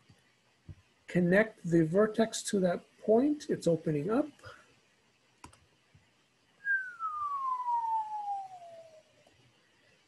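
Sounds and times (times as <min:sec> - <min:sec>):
descending whistle: 0:06.6 - 0:09.2.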